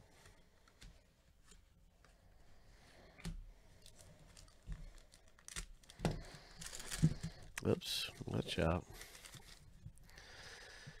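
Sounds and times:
foil wrapper tearing and crinkling: 0:04.4 - 0:08.4.

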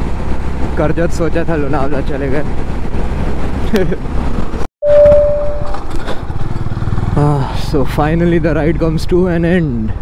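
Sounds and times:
loud steady tone: 0:04.8 - 0:05.8.

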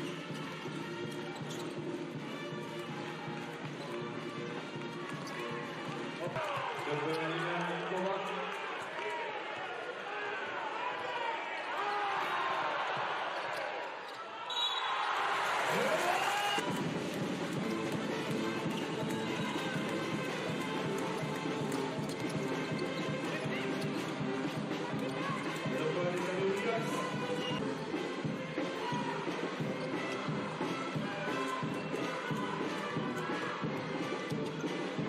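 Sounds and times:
arena crowd noise: 0:00.0 - 0:35.0
music over loudspeakers: 0:16.6 - 0:35.0.

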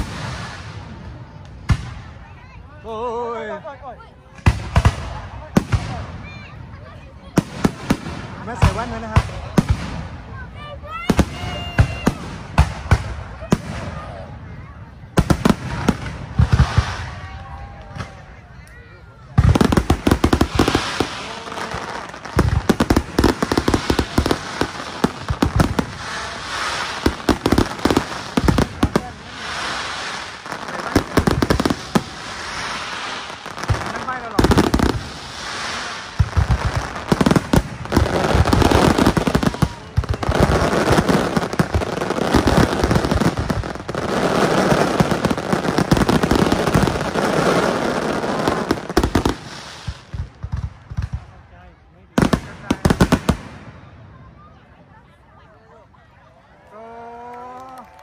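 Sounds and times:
firework crackling: 0:00.0 - 0:54.2.

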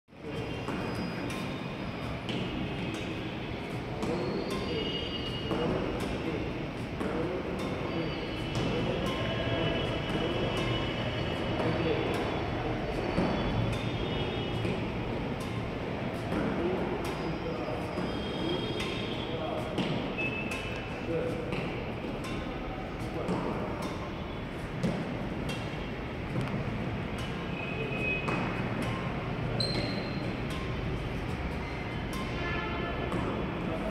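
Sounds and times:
short high squeaks: 0:00.2 - 0:06.4, 0:07.2 - 0:10.9, 0:16.4 - 0:21.0, 0:27.2 - 0:30.6
voices talking: 0:00.2 - 0:32.3
racket hitting shuttlecock: 0:00.7 - 0:01.6, 0:02.2 - 0:04.8, 0:05.4 - 0:09.2, 0:10.1 - 0:10.8, 0:12.9 - 0:27.6, 0:28.2 - 0:33.9.

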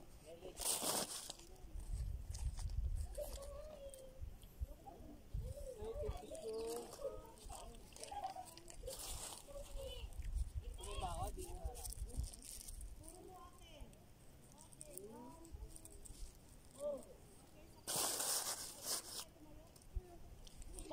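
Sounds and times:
wind rumbling on microphone: 0:01.6 - 0:07.6, 0:08.8 - 0:13.1
distant people talking: 0:03.0 - 0:20.9
snack wrapper crinkling: 0:14.4 - 0:16.8.

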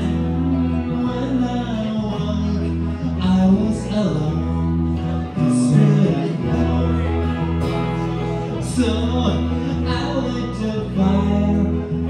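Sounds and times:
acoustic guitar: 0:00.0 - 0:12.0
electric bass: 0:00.0 - 0:12.0.

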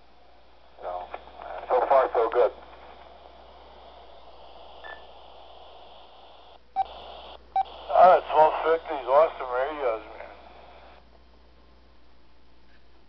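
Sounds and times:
open-channel radio hiss: 0:00.0 - 0:11.0
radio voice traffic: 0:00.8 - 0:11.0.

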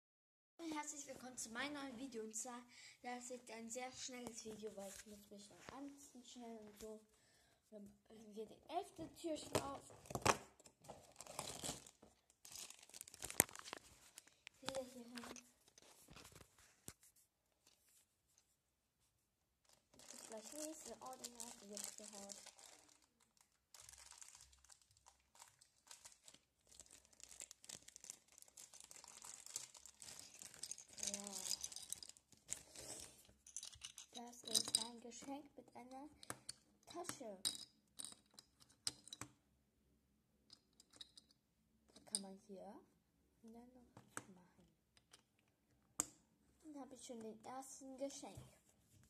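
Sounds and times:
cardboard crinkling and tearing: 0:11.0 - 0:14.8, 0:19.7 - 0:31.5.

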